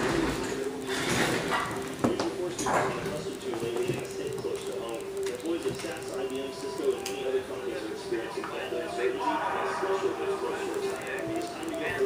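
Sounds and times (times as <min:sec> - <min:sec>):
trailer soundtrack from tv speaker: 0:03.2 - 0:12.0.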